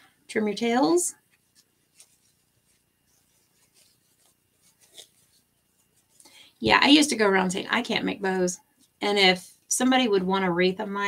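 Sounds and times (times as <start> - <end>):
ribbon bow rustling: 1.2 - 7.0.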